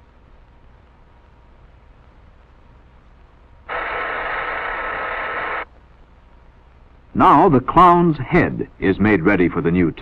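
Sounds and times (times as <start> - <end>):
faint background hiss: 0.0 - 10.0
loud steady static hiss: 0.0 - 10.0.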